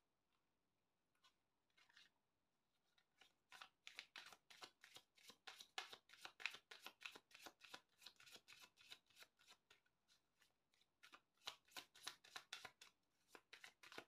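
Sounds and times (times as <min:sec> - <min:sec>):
cards shuffling: 0:03.0 - 0:09.6, 0:11.0 - 0:14.0.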